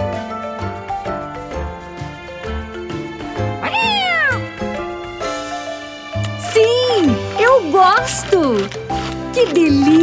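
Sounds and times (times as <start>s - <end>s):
children's background music: 0.0s - 10.0s
cartoon creature cat-like call: 3.6s - 4.5s.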